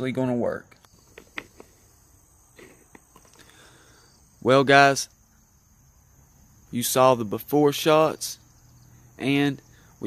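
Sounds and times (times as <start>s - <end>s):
high-pitched insect trill: 0.8s - 10.0s.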